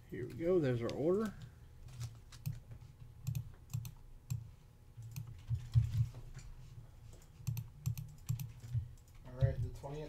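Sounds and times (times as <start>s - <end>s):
man speaking: 0.0s - 1.4s
computer keyboard keystrokes: 0.8s - 2.6s, 3.2s - 4.4s, 5.0s - 6.0s, 7.4s - 9.7s.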